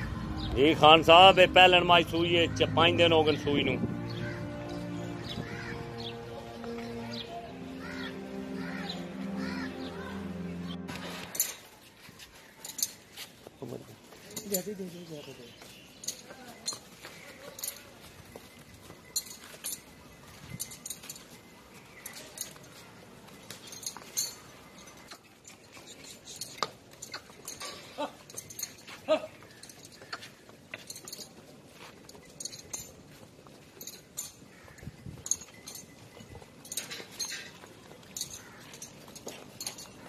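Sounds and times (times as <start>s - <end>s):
buffaloes moving about: 10.9s - 40.0s
light clinks and knocks: 12.6s - 14.7s, 15.9s - 40.0s.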